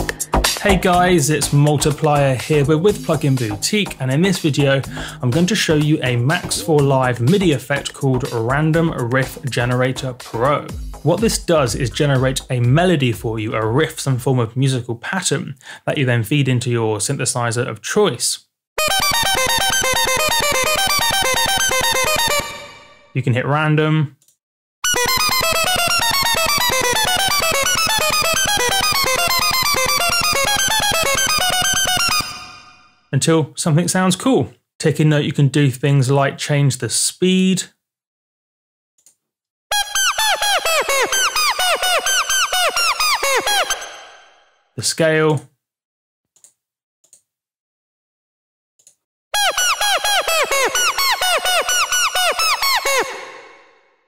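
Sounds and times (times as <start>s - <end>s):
synthesizer fast note sequence: 18.8s - 23.1s, 24.8s - 32.9s, 39.7s - 44.4s, 49.4s - 53.7s.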